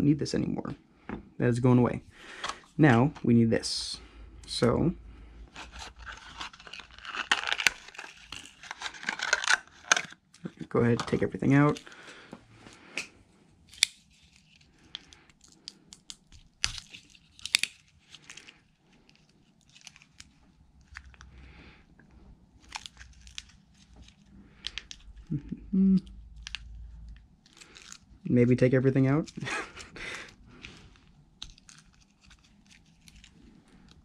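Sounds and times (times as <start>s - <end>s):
plastic parts clicking and rustling: 5.5s - 11.9s.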